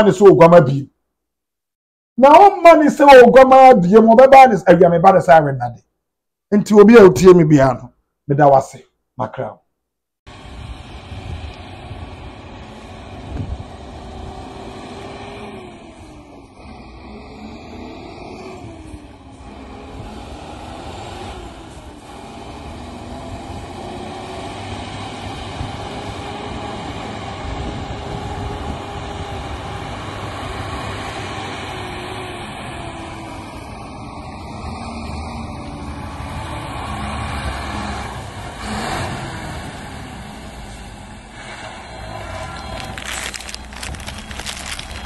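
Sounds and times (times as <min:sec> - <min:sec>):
truck diesel engine running: 0:42.1 - 0:45.0.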